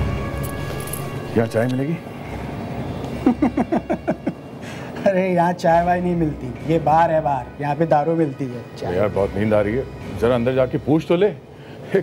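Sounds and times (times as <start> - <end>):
steady background hum: 0.0 - 12.0
person laughing: 3.2 - 4.4.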